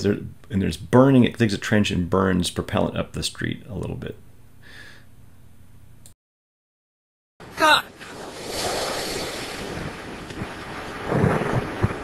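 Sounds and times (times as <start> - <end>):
propellant burning with rushing hiss: 8.0 - 12.0.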